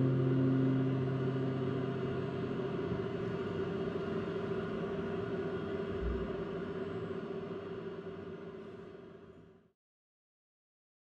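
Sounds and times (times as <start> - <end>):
acoustic guitar chord ringing: 0.0 - 4.3
low hum of room noise: 0.0 - 9.7.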